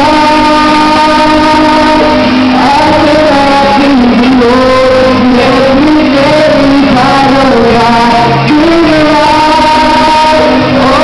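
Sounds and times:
man singing long note: 0:00.0 - 0:11.0.

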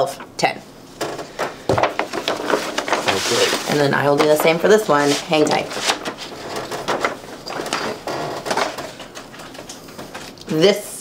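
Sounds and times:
rustling and scraping of tools: 0:01.0 - 0:10.4.

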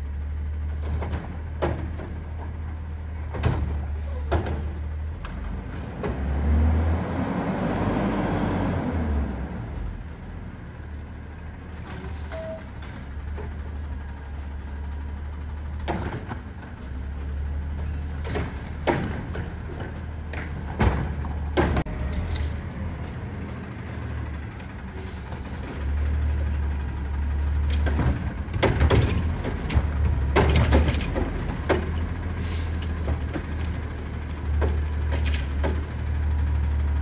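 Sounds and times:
garbage truck diesel engine: 0:00.0 - 0:37.0
metallic knocks and clanks: 0:27.7 - 0:32.1.

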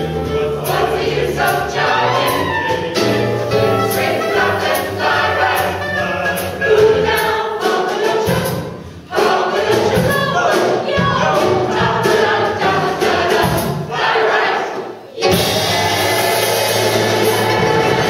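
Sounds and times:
mixed choir singing in harmony: 0:00.0 - 0:18.0.

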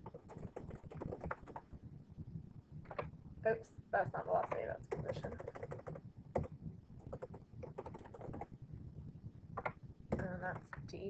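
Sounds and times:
computer keyboard typing: 0:00.0 - 0:01.6, 0:04.4 - 0:08.5, 0:09.6 - 0:10.3.

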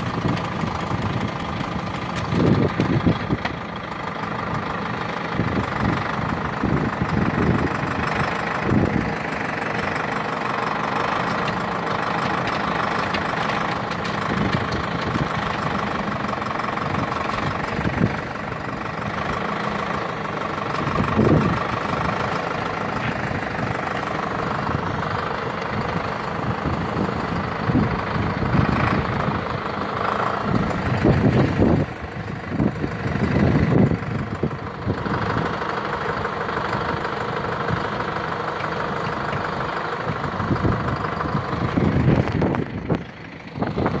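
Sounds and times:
diesel engines running: 0:00.0 - 0:44.0.

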